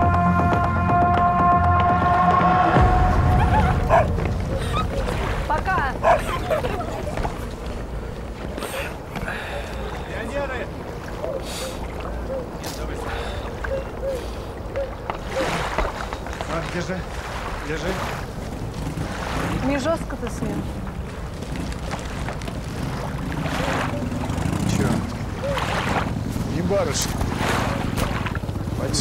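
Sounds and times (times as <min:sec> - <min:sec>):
sustained music chord: 0:00.0 - 0:04.5.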